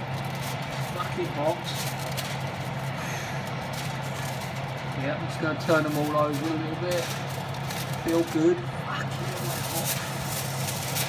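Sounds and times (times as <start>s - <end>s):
oven convection fan humming: 0.0s - 11.0s.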